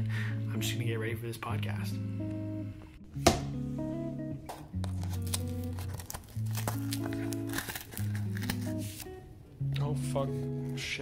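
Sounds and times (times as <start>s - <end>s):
mellow guitar music: 0.0s - 11.0s
cardboard box crinkling: 4.9s - 9.1s
sharp crackle: 5.1s - 9.1s.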